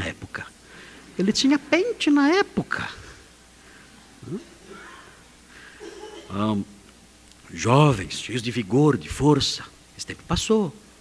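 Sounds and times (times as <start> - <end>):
faint murmuring: 2.7 - 6.7
person chuckling: 5.8 - 6.4.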